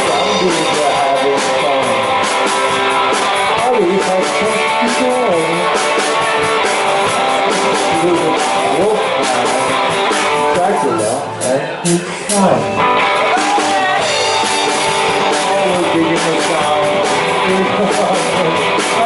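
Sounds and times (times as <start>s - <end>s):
rock and roll band playing: 0.0s - 19.0s.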